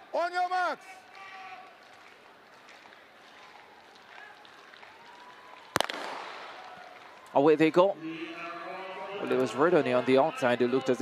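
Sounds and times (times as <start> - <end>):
starter's gun crack: 5.8 - 6.7.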